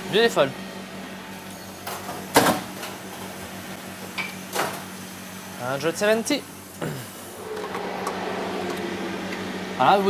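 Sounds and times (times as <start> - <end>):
steady low hum: 7.1 - 10.0.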